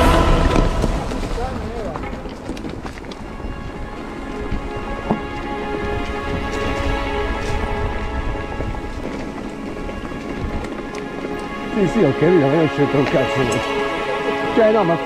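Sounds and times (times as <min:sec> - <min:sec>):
bike tyres rushing on leaves: 0:00.0 - 0:15.0
low riding rumble: 0:00.0 - 0:15.0.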